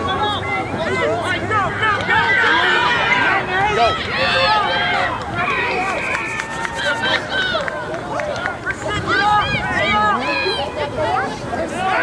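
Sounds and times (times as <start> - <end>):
voices shouting and calling: 0.0 - 12.0.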